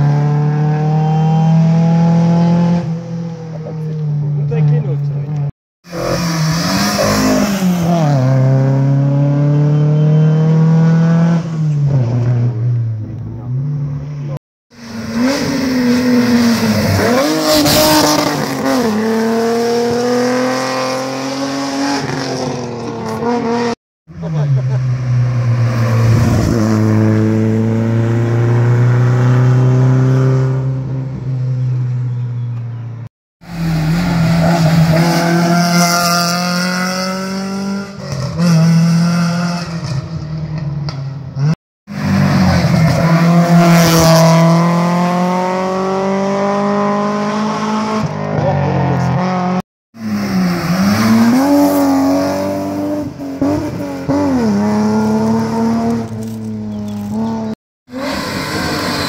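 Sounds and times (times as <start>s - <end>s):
race car engines passing: 0.0s - 59.0s.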